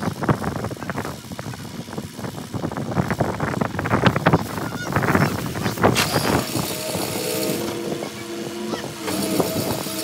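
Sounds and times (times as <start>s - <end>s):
diesel excavator engine running: 0.0s - 10.0s.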